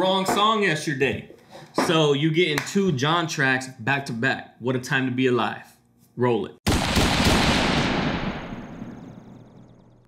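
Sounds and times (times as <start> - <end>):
faint high ringing tone: 8.5 - 10.0.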